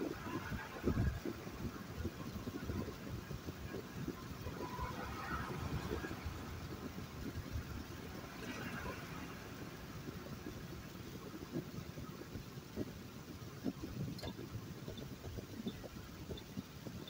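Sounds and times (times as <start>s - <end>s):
car engine and tyre rumble: 0.0s - 17.0s.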